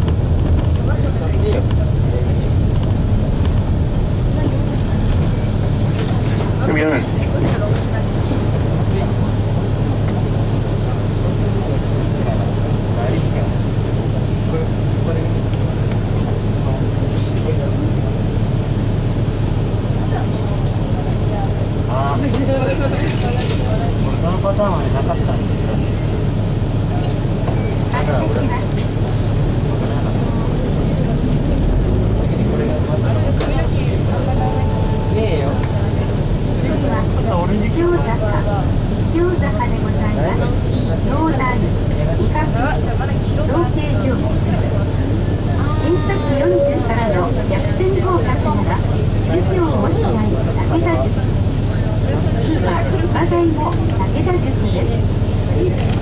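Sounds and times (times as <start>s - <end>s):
diesel bus engine running: 0.0s - 56.0s
voices: 0.0s - 56.0s.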